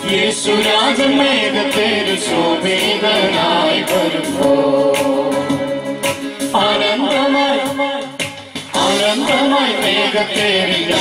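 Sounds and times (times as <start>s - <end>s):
girls singing a hymn: 0.0s - 5.6s, 8.8s - 11.0s.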